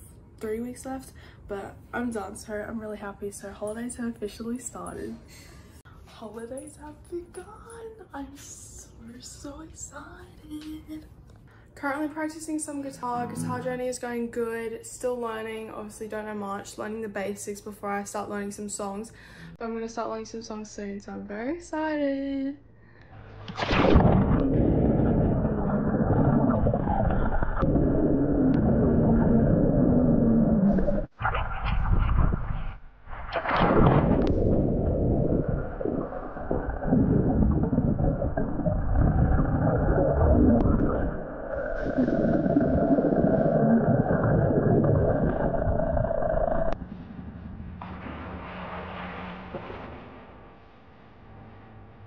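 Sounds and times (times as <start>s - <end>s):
muffled underwater water noise: 23.3s - 46.8s.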